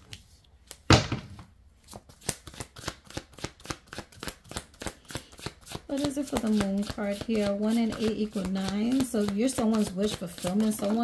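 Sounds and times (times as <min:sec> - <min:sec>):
cards being shuffled: 0:01.8 - 0:11.0.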